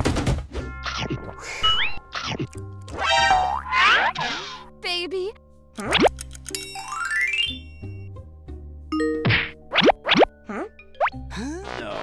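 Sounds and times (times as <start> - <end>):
children's background music: 0.6 - 11.9.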